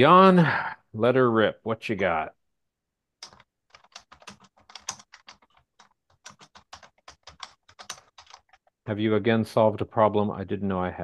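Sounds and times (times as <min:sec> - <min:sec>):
computer keyboard typing: 0:03.2 - 0:08.7.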